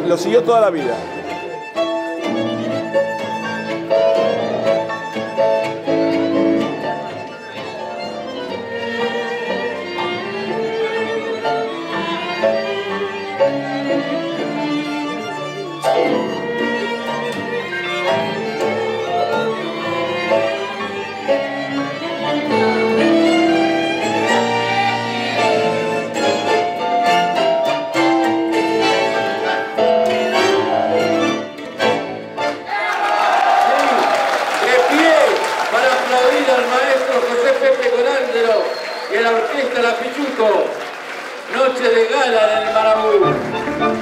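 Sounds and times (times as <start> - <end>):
violins holding melody notes: 0.0 - 32.7, 41.5 - 44.0
tango orchestra music: 0.0 - 32.9, 34.6 - 44.0.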